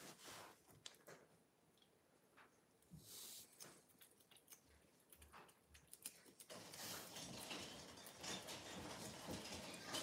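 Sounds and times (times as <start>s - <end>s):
cat licking: 3.1s - 6.5s.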